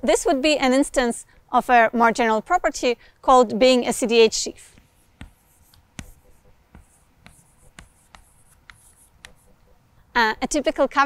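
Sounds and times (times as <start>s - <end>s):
chalk scratching: 4.6s - 9.8s
chalk tapping on chalkboard: 4.7s - 9.8s.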